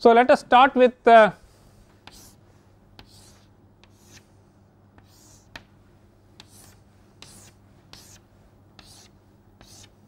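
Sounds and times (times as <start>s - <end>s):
chalk scratching on chalkboard: 2.0s - 2.4s, 3.0s - 4.4s, 5.0s - 5.7s, 6.4s - 10.0s.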